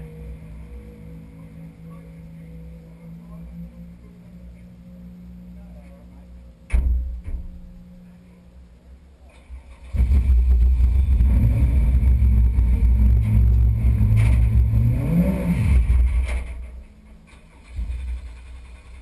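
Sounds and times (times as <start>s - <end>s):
racing car engine idling: 0.0s - 19.0s.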